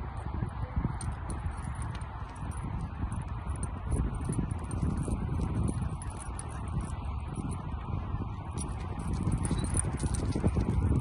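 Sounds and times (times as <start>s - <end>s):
footsteps on pavement: 0.0s - 11.0s.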